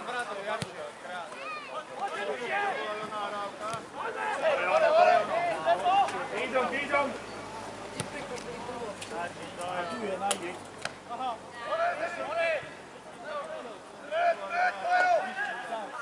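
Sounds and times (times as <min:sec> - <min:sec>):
voices shouting: 0:01.3 - 0:16.0.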